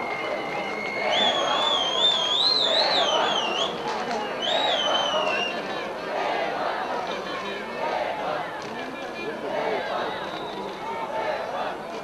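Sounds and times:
long high whistle: 0.0s - 3.7s
murmur of stadium spectators: 0.0s - 12.0s.

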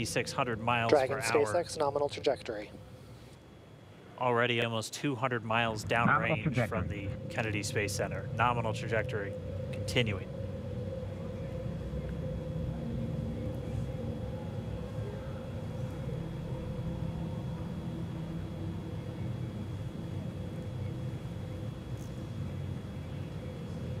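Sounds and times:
constant hum: 0.0s - 24.0s
rocket low rumble: 5.6s - 9.9s.

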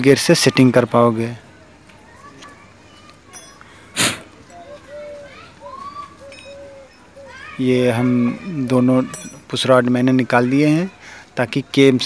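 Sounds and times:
faint children calling: 0.0s - 12.0s.

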